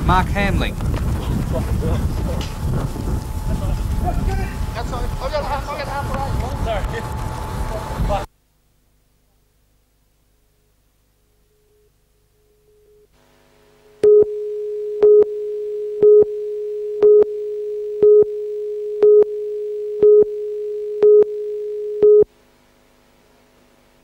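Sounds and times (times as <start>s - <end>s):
steady mid-pitched tone: 13.8s - 22.3s
countdown beeps: 14.0s - 22.3s.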